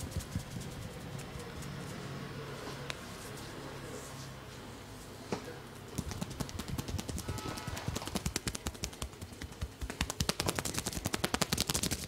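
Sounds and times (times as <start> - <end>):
hands slapping scalp: 6.0 - 12.0.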